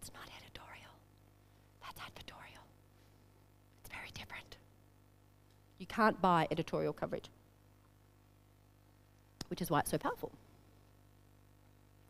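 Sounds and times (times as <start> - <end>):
person whispering: 0.0 - 1.0, 1.8 - 2.7, 3.8 - 4.7.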